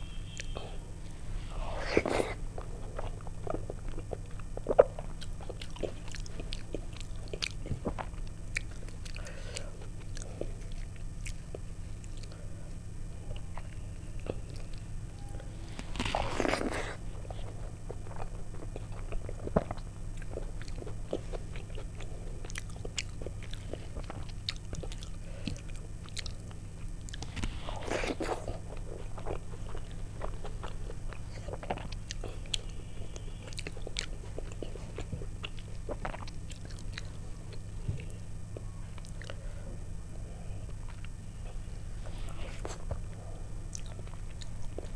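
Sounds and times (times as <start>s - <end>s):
steady low hum: 0.0s - 44.9s
wet chewing: 1.8s - 12.4s, 13.3s - 39.4s, 40.6s - 44.9s.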